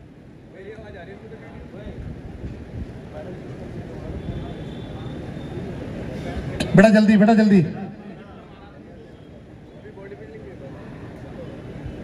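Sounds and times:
faint indistinct voices: 0.1s - 6.8s, 7.8s - 12.0s.

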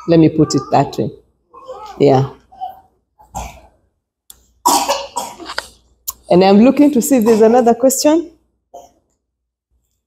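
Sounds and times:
person coughing: 4.6s - 5.6s.

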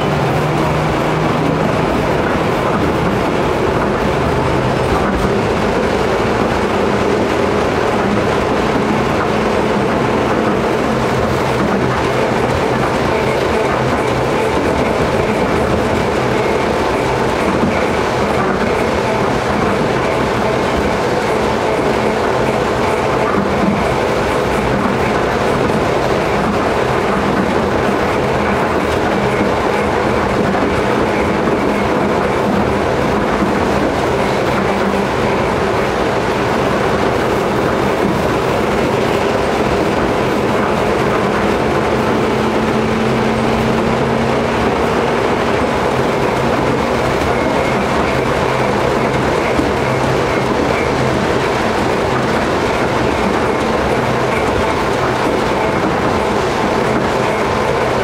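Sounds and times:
tram wheels rolling on rail: 0.0s - 58.0s.

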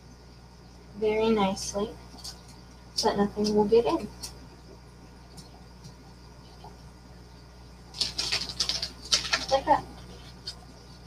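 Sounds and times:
paper and plastic lid crinkling: 7.9s - 10.6s.

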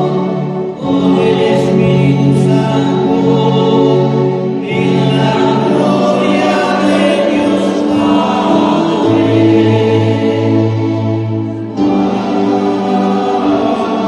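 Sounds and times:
choir singing a hymn: 0.0s - 14.0s.

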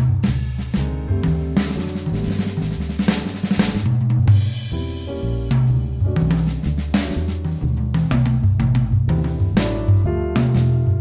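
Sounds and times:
electronic drum kit groove: 0.0s - 11.0s
music with moving bass line: 0.0s - 11.0s.

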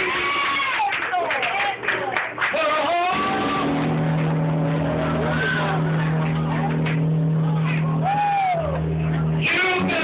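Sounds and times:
low held organ chord: 3.1s - 10.0s
person singing sliding pitch: 3.1s - 10.0s.

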